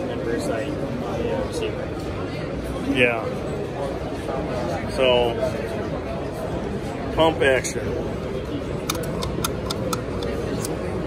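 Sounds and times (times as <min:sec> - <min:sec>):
busy exhibition hall noise: 0:00.0 - 0:11.0.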